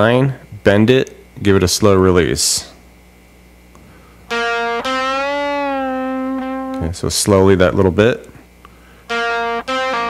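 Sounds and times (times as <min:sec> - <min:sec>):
electric guitar lead phrase: 0:04.3 - 0:07.0, 0:08.8 - 0:10.0.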